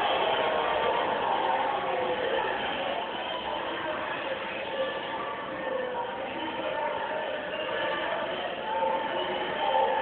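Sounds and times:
muffled crowd din from television: 0.0s - 10.0s.

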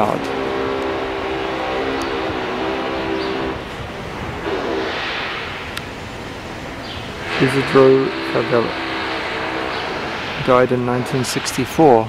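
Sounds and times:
engine drone: 0.0s - 12.0s
hiss: 0.0s - 12.0s.

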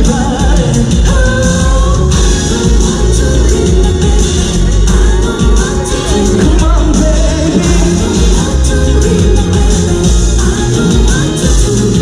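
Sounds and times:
amplified live pop music: 0.0s - 12.0s
lead vocal singing: 0.0s - 12.0s.

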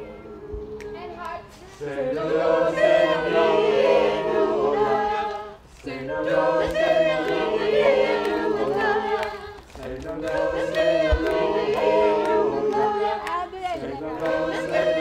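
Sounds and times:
group singing a cappella: 0.0s - 15.0s.

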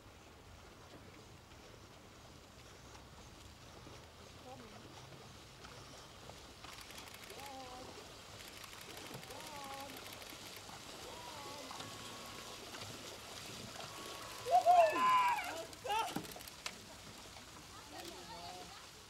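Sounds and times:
steady outdoor hiss: 0.0s - 19.0s
people shouting: 13.8s - 16.4s
high-pitched shouts: 14.3s - 16.2s.

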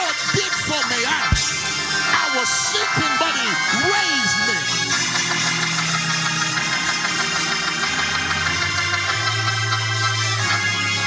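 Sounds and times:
organ sustained chord: 0.0s - 11.0s.

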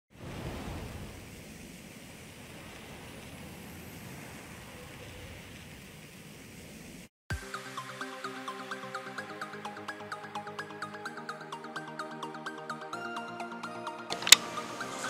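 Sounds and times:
electronic music with beat: 7.3s - 15.0s.

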